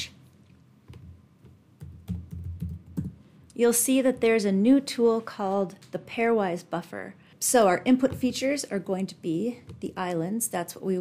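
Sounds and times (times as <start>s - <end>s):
computer keyboard typing: 1.8s - 3.2s.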